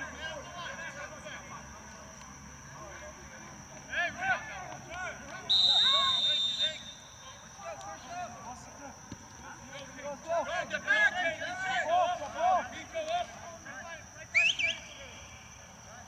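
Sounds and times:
players shouting: 0:03.8 - 0:08.7, 0:09.8 - 0:15.3
referee's whistle blast: 0:05.5 - 0:07.2, 0:14.3 - 0:15.0.

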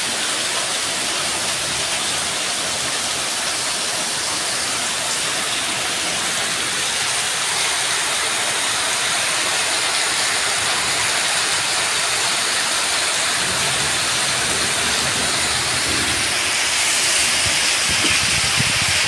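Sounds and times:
heavy rain on paving: 0:00.0 - 0:19.0
roof runoff splashing: 0:00.0 - 0:19.0.

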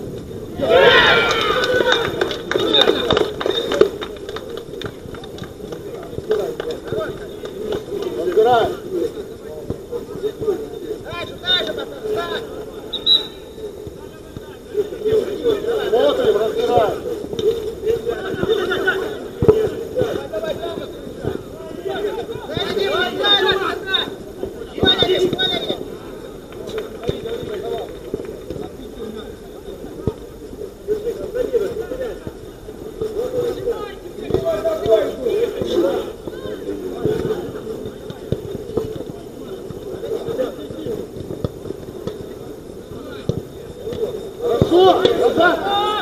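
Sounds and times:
players shouting: 0:00.4 - 0:30.0, 0:30.8 - 0:41.0, 0:42.0 - 0:46.0.

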